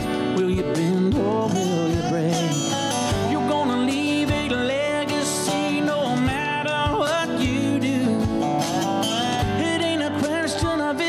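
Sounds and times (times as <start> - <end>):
acoustic guitar: 0.0 - 11.0
keyboard: 0.0 - 11.0
male lead vocal: 0.0 - 11.0
slide guitar gliding notes: 0.0 - 11.0.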